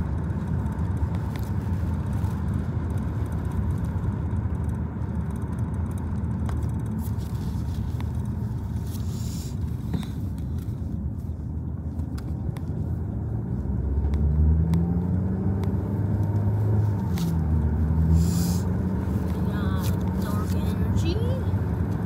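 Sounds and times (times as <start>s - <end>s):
car cabin rumble: 0.0s - 22.0s.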